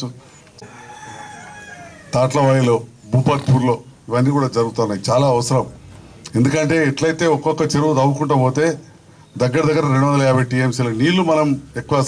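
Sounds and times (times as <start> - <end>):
man's voice through microphone: 0.0 - 0.2, 2.1 - 12.0
rooster crowing faintly: 0.5 - 2.7.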